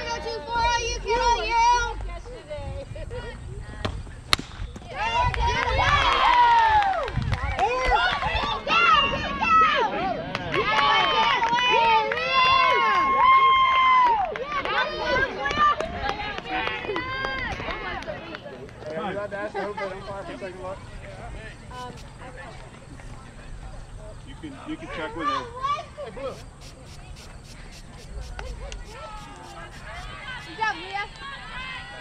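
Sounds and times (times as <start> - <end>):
bat cracking against ball: 4.3 - 4.6
people shouting and cheering: 4.8 - 18.2.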